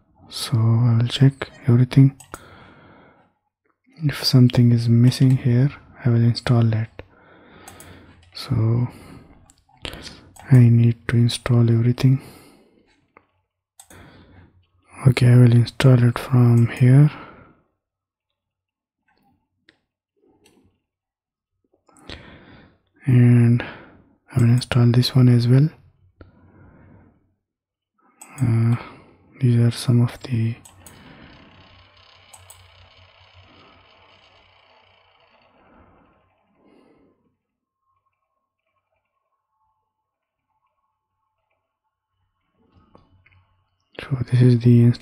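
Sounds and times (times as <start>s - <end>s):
computer mouse clicks: 2.1s - 2.5s, 7.6s - 8.4s, 13.2s - 14.0s, 28.2s - 28.8s, 30.2s - 33.5s
low electrical hum: 4.0s - 17.6s, 28.3s - 45.0s.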